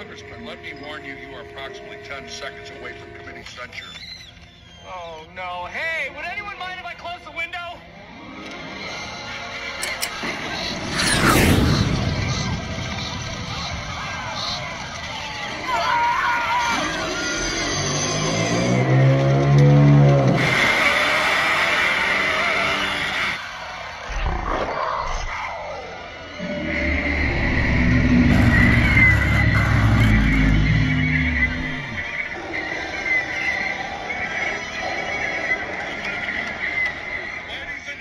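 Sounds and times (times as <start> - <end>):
film soundtrack music: 0.0 - 5.0, 6.7 - 23.4, 26.4 - 38.0
wavering animal call: 26.3 - 37.5.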